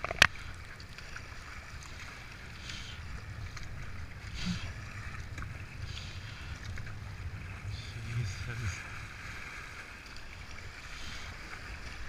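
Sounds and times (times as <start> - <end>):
paddle strokes splashing: 0.0 - 12.0
wind rumble on microphone: 0.0 - 12.0.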